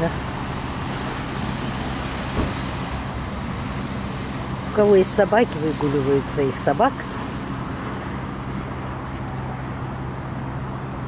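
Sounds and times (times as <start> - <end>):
road traffic drone: 0.0 - 11.0.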